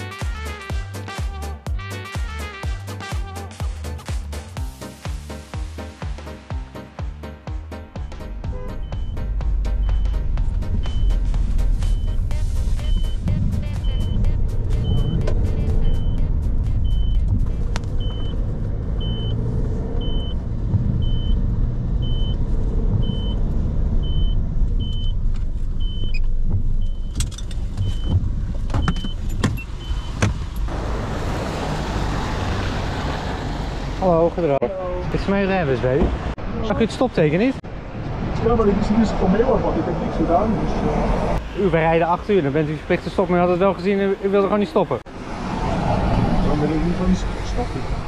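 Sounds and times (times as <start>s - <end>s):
engine and tyre rumble: 7.4s - 48.0s.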